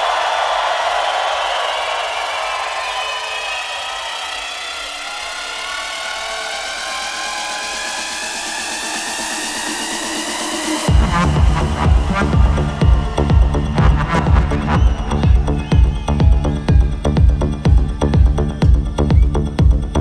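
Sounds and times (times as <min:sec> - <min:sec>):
crowd cheering: 0:00.0 - 0:20.0
electronic dance music build-up: 0:01.4 - 0:20.0
bass-heavy drop: 0:04.7 - 0:20.0.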